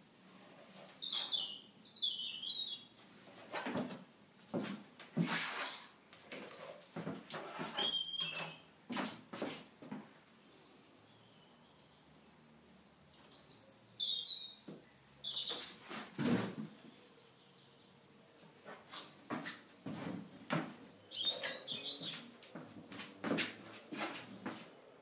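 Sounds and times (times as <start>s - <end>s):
birds chirping: 0.5s - 3.0s, 6.3s - 8.8s, 10.3s - 16.0s, 16.7s - 25.0s.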